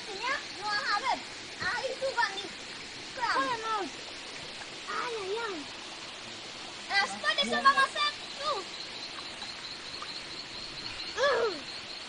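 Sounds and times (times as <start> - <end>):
forest stream running: 0.0 - 12.0.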